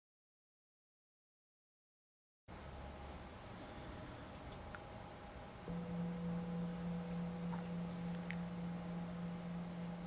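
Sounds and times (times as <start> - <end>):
singing bowl ringing: 5.7 - 10.0.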